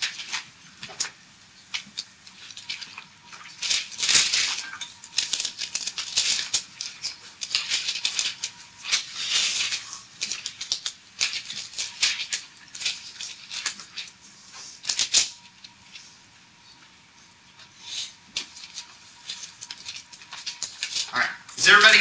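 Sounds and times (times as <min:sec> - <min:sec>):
pages flipping: 0:00.0 - 0:16.1, 0:17.6 - 0:22.0.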